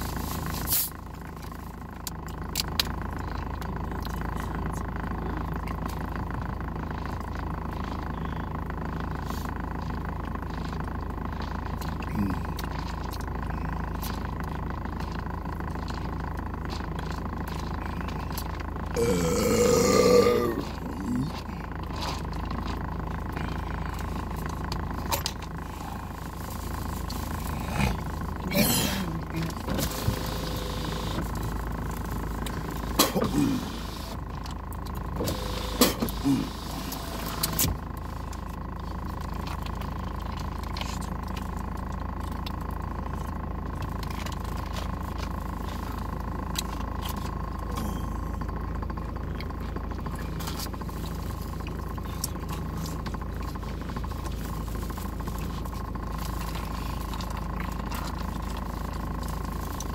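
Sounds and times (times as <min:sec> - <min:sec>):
throat sounds: 0:12.0 - 0:12.8, 0:18.9 - 0:21.8, 0:27.4 - 0:29.7, 0:33.0 - 0:33.8
man burping: 0:19.0 - 0:21.4, 0:27.8 - 0:29.3
car cabin hum: 0:20.2 - 0:59.9.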